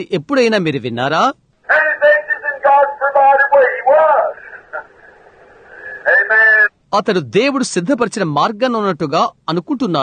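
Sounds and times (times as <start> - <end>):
recording hiss: 0.0 - 10.0
man's voice preaching: 1.6 - 5.0, 5.8 - 7.2.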